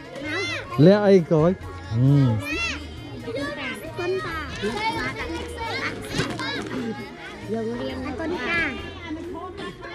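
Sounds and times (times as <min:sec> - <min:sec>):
small children talking: 0:00.0 - 0:09.9.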